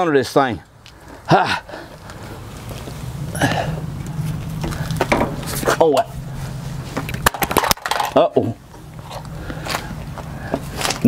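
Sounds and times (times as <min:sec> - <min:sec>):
steady low hum: 0:01.0 - 0:11.0.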